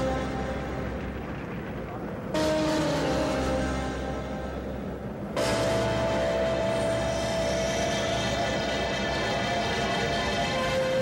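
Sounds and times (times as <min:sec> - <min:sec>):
dramatic suspense music: 0:00.0 - 0:11.0
low rumble: 0:00.0 - 0:11.0.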